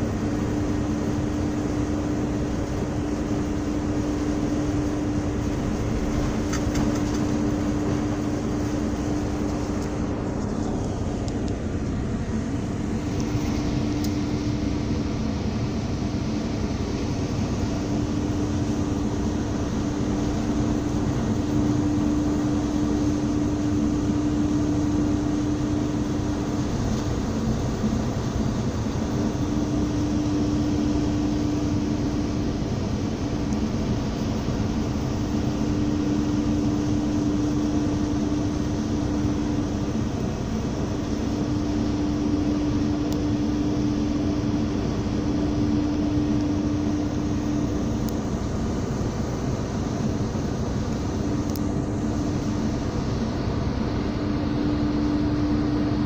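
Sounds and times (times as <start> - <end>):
low hum: 0.0 - 56.0
ship engine drone: 0.0 - 56.0
wind and sea rushing: 0.0 - 56.0.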